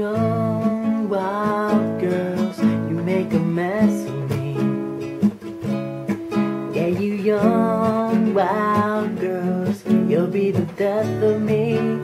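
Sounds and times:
person singing: 0:00.0 - 0:05.2, 0:06.2 - 0:12.0
acoustic guitar strumming: 0:00.0 - 0:12.0.

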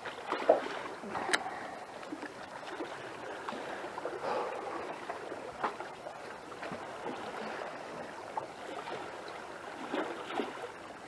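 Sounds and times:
small waves lapping: 0:00.0 - 0:11.0.

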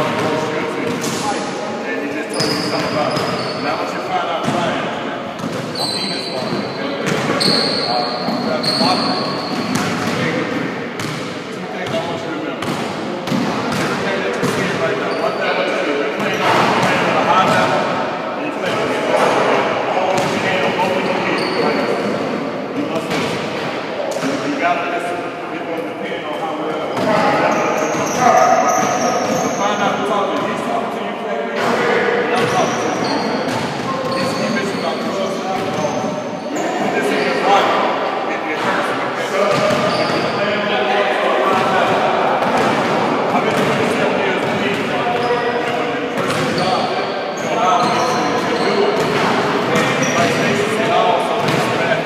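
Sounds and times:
voices talking: 0:00.0 - 0:52.0
basketballs bouncing on hardwood: 0:05.4 - 0:12.0, 0:12.6 - 0:14.8, 0:32.4 - 0:34.5, 0:39.5 - 0:40.2, 0:42.4 - 0:45.3, 0:46.2 - 0:46.7, 0:47.8 - 0:50.4, 0:51.4 - 0:51.8.

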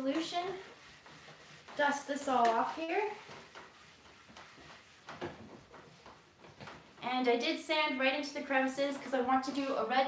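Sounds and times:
damp cloth wiping wood: 0:00.0 - 0:07.1.

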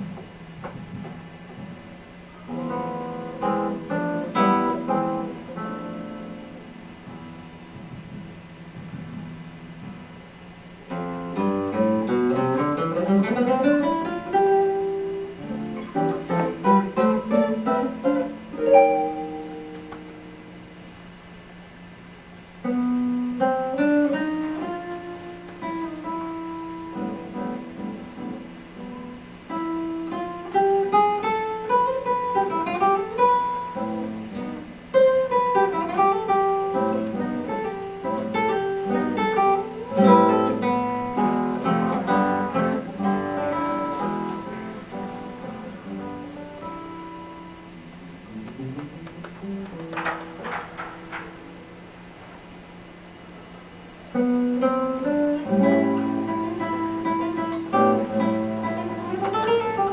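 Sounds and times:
solo classical guitar: 0:00.0 - 0:20.8, 0:22.6 - 0:59.9.

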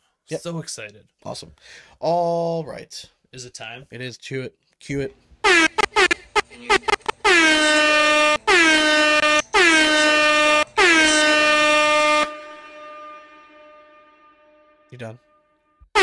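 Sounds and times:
air horn blasts: 0:05.4 - 0:15.4.

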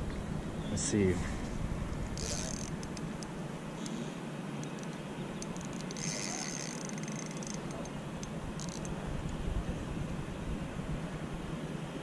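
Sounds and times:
outdoor noise: 0:00.0 - 0:12.0
fishing reel clicks: 0:02.2 - 0:03.3, 0:04.7 - 0:07.9, 0:08.6 - 0:08.9
fishing reel whirring: 0:02.2 - 0:04.0, 0:04.7 - 0:08.9.

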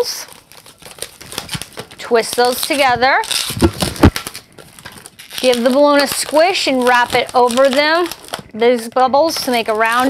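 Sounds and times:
rubber balloon rustling: 0:00.0 - 0:10.0
dull balloon knocks: 0:03.5 - 0:04.2.

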